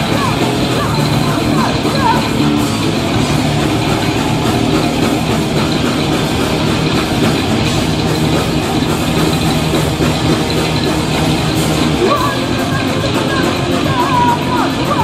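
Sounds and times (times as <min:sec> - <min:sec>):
distorted electric guitars: 0:00.0 - 0:15.0
drum kit playing: 0:00.0 - 0:15.0.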